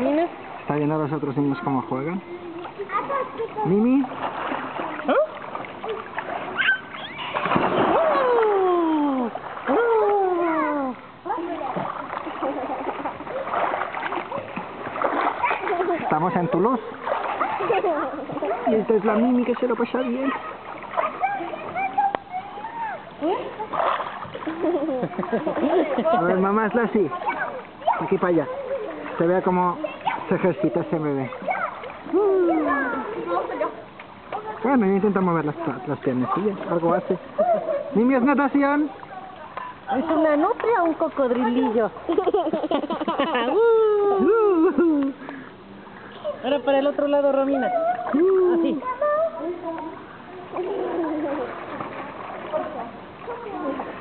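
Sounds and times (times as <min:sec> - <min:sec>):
pool water splashing: 0:00.0 - 0:54.0.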